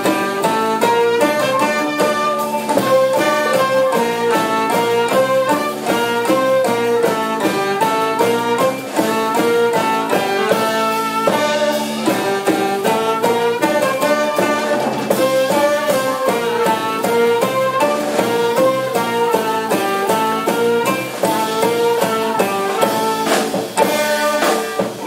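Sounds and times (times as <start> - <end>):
clarinet: 0.0 - 25.0
drums and hand percussion: 0.0 - 25.0
saxophone: 0.0 - 25.0.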